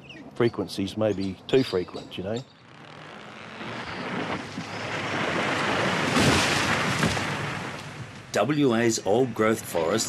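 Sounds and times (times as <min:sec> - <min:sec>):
tree crashing down: 0:03.0 - 0:08.4.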